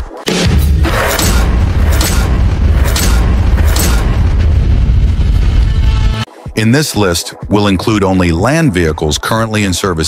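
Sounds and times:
sharp hits: 0.3 - 6.3
deep booming rumble: 0.5 - 6.1.

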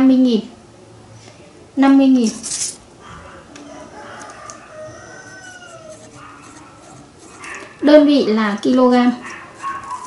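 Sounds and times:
pen strokes on paper: 5.7 - 7.8, 9.2 - 10.0.

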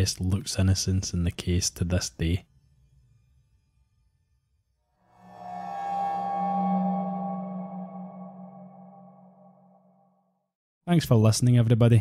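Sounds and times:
background music drone: 5.1 - 9.8.

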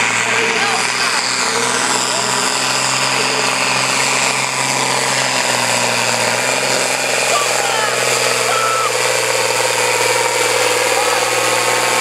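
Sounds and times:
tractor diesel engine under heavy load: 0.0 - 12.0.

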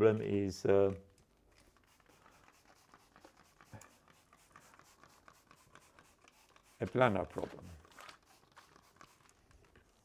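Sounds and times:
spray bottle scratchy ticks: 1.6 - 7.4, 8.2 - 9.4.

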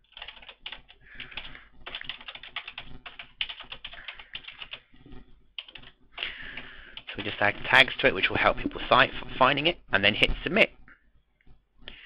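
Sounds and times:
computer keyboard typing: 0.0 - 4.9, 5.6 - 8.0.

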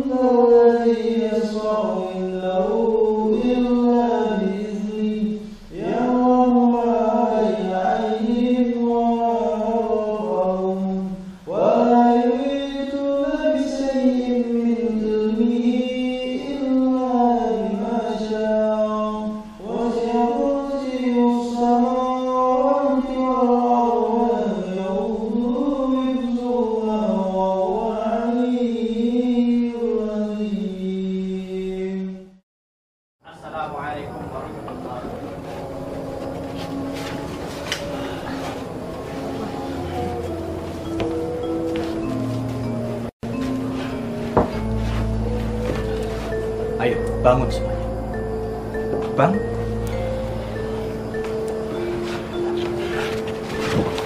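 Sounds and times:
chanted vocal music: 0.0 - 32.4, 33.2 - 54.0.

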